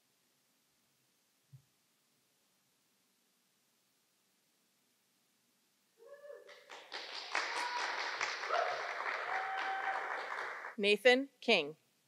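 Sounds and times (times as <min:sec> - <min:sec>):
people cheering and whooping: 0:06.0 - 0:10.7
clapping: 0:06.4 - 0:10.8.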